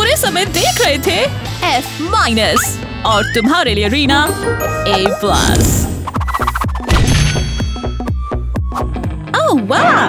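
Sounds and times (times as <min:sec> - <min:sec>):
ringing bell-like tones: 0:04.2 - 0:06.1.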